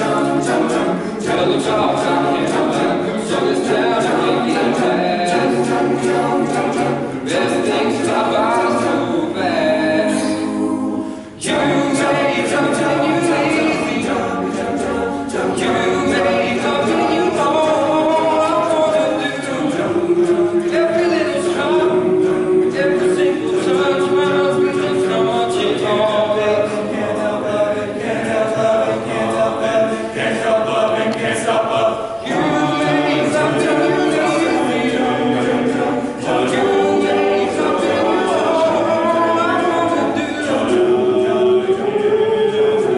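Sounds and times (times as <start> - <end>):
men's choir singing unaccompanied: 0.0 - 42.9.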